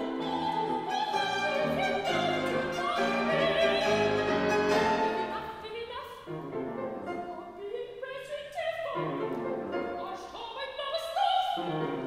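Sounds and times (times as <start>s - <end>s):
piano: 0.0s - 12.0s
soprano singing: 0.0s - 12.0s
violin: 0.0s - 12.0s.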